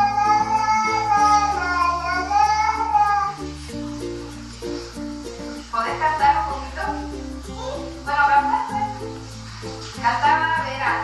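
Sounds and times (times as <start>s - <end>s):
toddler singing a long note: 0.0s - 3.5s
background music: 0.0s - 11.0s.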